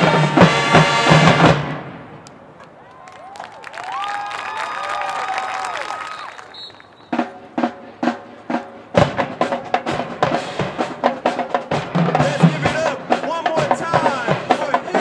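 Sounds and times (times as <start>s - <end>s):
snare and bass drums: 0.0s - 1.9s, 6.7s - 15.0s
marching band horns sliding chords: 0.0s - 2.8s, 6.0s - 15.0s.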